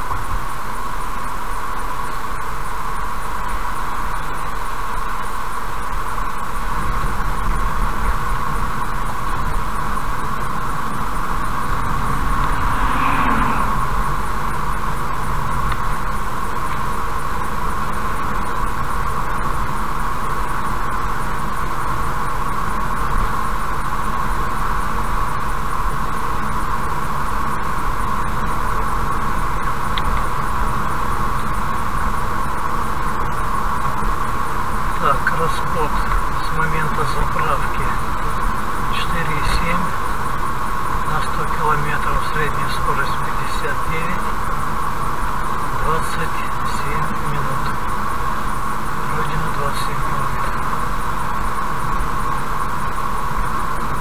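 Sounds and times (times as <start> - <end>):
car engine rumble: 0.0 - 54.0
vehicle passing: 9.8 - 16.1
tyre roar: 11.0 - 14.7.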